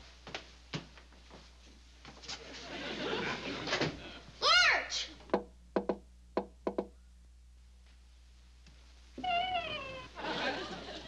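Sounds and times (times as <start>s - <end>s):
knocks on wooden door: 5.3s - 6.9s.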